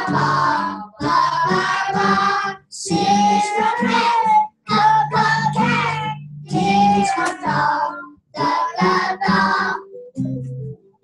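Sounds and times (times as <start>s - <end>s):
young children singing: 0.0s - 9.9s.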